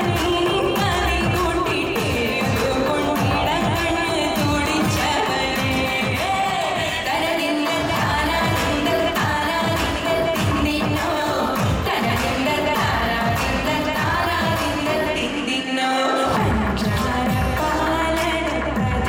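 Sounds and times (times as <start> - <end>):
amplified instrumental accompaniment: 0.0 - 7.0
woman singing into microphone: 0.0 - 19.0.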